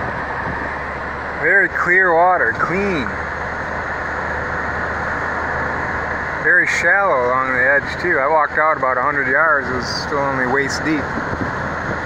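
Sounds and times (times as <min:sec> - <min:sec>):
car interior road and engine noise: 0:00.0 - 0:12.0.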